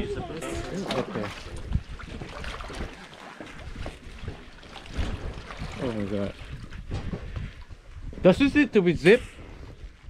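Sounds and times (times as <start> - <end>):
wind noise on microphone: 0.0 - 3.0, 3.6 - 10.0
water splashing and sloshing: 0.0 - 10.0.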